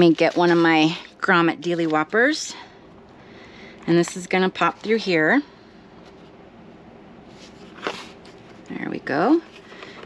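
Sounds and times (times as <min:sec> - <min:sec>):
faint handling noise: 0:07.2 - 0:10.0.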